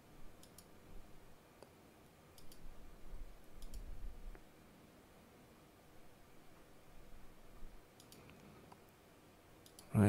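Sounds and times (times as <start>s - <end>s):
computer mouse clicks: 0.4s - 0.8s, 2.3s - 2.7s, 3.6s - 4.4s, 7.9s - 8.9s, 9.6s - 9.9s.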